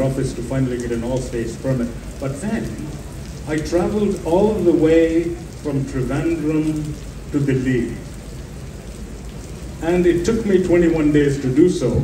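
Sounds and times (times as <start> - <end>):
man speaking over microphone: 0.0 - 8.1, 9.8 - 12.0
background hiss: 0.0 - 12.0.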